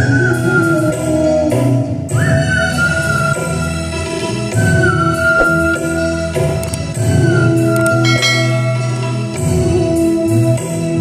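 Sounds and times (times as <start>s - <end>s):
whistled melody: 0.0s - 9.7s
live band accompaniment: 0.0s - 11.0s.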